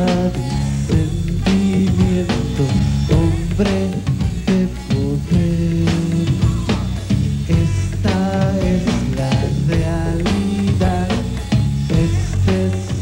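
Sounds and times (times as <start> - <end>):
bass guitar: 0.0 - 13.0
drum kit steady beat: 0.0 - 13.0
electric guitars: 0.0 - 13.0.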